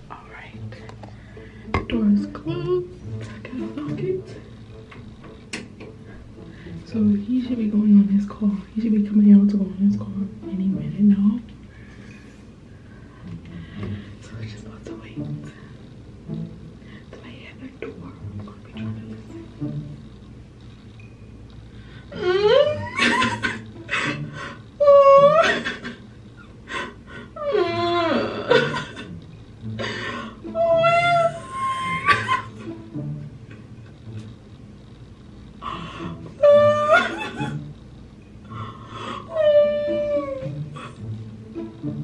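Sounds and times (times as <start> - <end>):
woman wailing whimper: 22.1 - 23.6, 24.8 - 26.0, 30.5 - 32.6, 36.4 - 37.6, 39.0 - 40.9.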